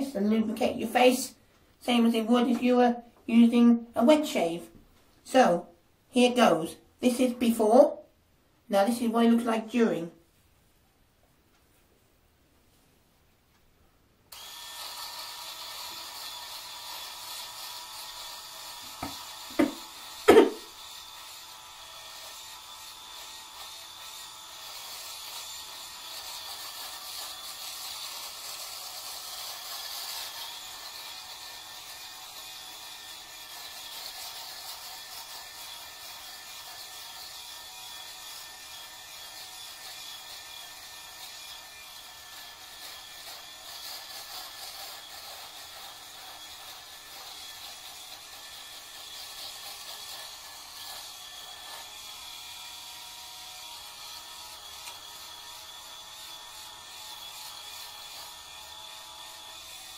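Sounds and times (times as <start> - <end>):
electric shaver running: 14.3 - 59.9.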